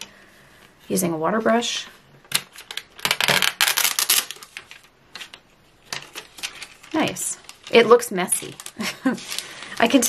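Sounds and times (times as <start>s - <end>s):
plastic wrapper crinkling: 2.3s - 10.0s.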